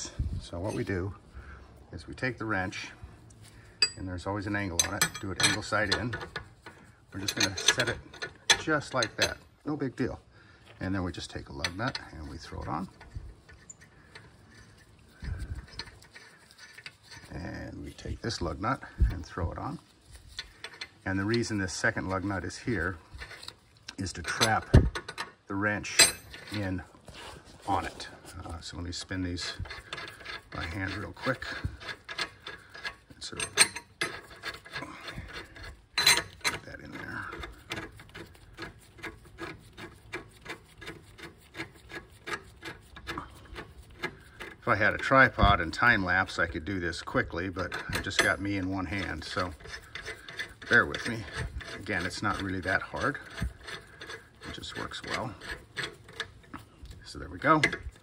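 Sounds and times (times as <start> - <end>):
metal clinks: 3.8 - 4.1, 31.2 - 37.4
lug nut threads ticking: 29.2 - 46.4, 47.4 - 58.0.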